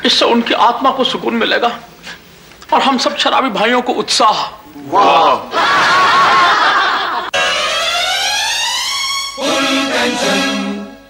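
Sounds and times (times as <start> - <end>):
people laughing: 5.5 - 7.4.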